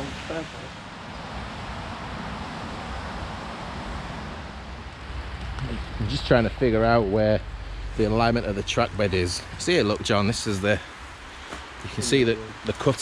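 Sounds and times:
road traffic tyre rush: 0:00.0 - 0:13.0.

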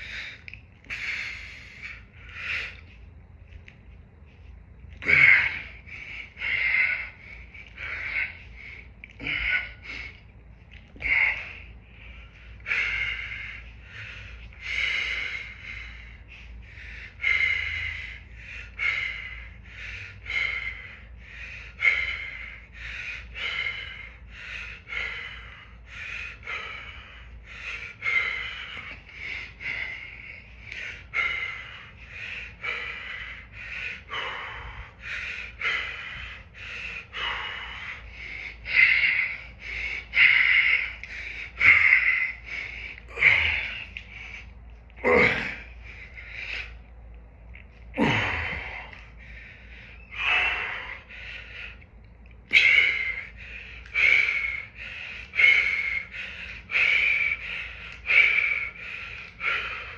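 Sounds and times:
man breathing hard: 0:00.0 - 0:59.9.

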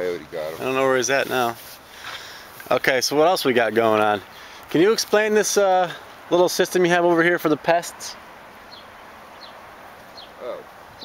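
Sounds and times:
outdoor background noise: 0:00.0 - 0:11.0
small bird chirping: 0:08.6 - 0:11.0.

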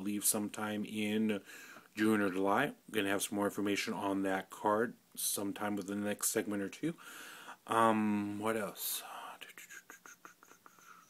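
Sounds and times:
man whispering faintly: 0:07.8 - 0:11.0.

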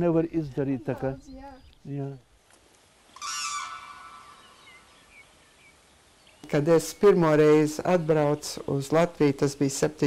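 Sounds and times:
small birds chirping: 0:00.0 - 0:10.0
crane calling: 0:03.1 - 0:05.9.

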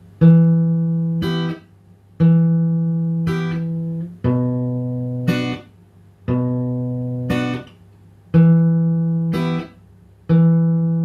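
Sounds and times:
acoustic guitar fingerpicked: 0:00.2 - 0:11.0.

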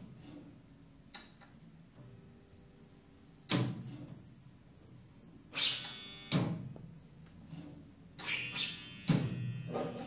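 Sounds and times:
ringing piano string sounds: 0:08.8 - 0:10.0.

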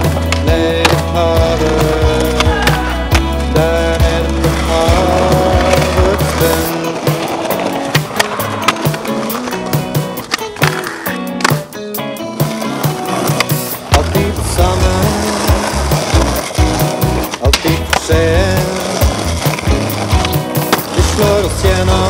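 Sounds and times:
loud background music: 0:00.0 - 0:22.0
skateboard clacking: 0:00.0 - 0:22.0
skateboard wheels rolling on concrete: 0:00.0 - 0:22.0.

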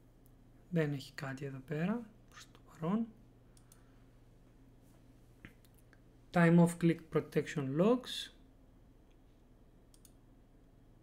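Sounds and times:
computer mouse clicks: 0:03.5 - 0:03.8, 0:09.9 - 0:10.2.

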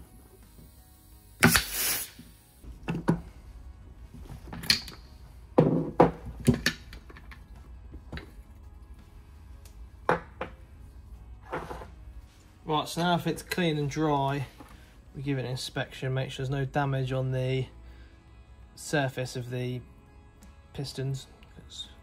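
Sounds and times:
compressed air hissing: 0:00.0 - 0:02.8.

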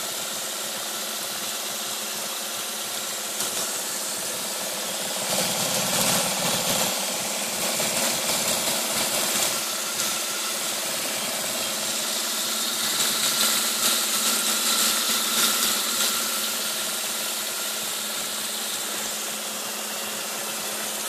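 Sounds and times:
mechanical hum: 0:00.0 - 0:21.0
water jet spraying and splashing: 0:00.1 - 0:21.0.

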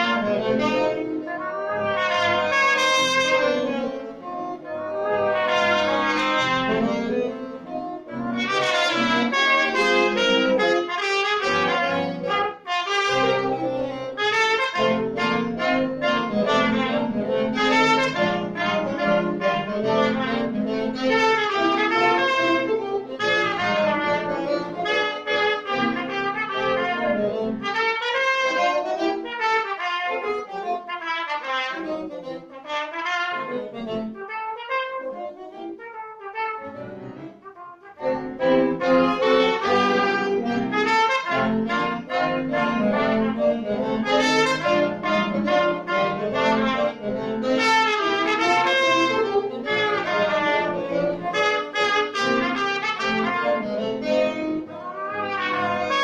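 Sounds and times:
french horn: 0:00.0 - 0:30.2, 0:30.9 - 0:56.0
saxophone: 0:00.0 - 0:56.0
trumpet: 0:00.0 - 0:56.0.

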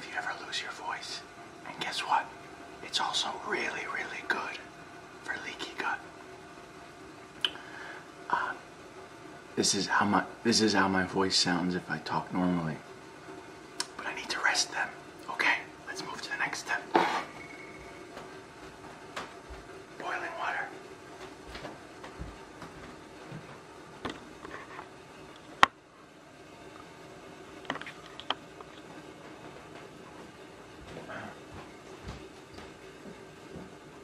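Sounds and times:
man whispering: 0:00.0 - 0:06.1, 0:08.3 - 0:08.6, 0:13.8 - 0:17.1, 0:20.0 - 0:20.8, 0:31.0 - 0:31.4
soft footsteps on floor: 0:17.3 - 0:19.8, 0:21.1 - 0:24.7, 0:28.7 - 0:34.0.

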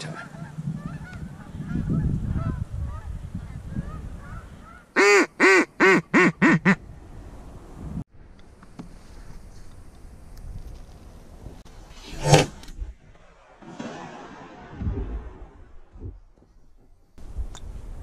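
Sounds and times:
wind noise: 0:00.0 - 0:05.0, 0:06.3 - 0:08.1, 0:09.0 - 0:18.0.

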